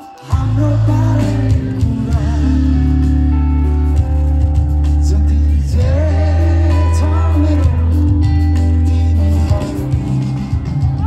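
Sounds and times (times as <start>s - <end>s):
live rock band playing: 0.0s - 11.0s
person singing with vibrato: 0.0s - 11.0s.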